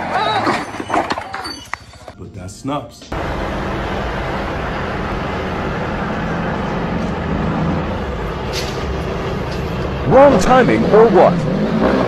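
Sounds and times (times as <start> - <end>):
street traffic rumble: 3.0 - 12.0.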